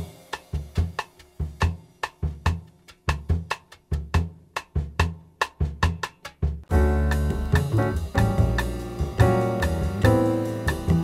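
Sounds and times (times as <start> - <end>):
drum kit syncopated groove: 0.0 - 11.0
bossa nova backing track: 5.5 - 11.0.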